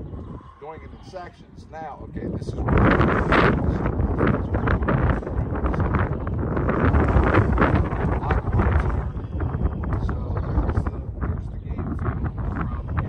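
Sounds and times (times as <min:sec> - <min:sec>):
man talking indistinctly: 0:00.0 - 0:13.0
wind buffeting microphone: 0:00.0 - 0:13.0.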